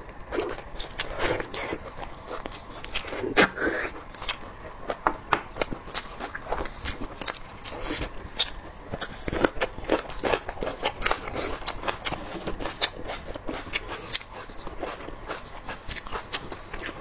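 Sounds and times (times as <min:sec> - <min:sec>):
close chewing mouth sounds: 0:00.0 - 0:17.0.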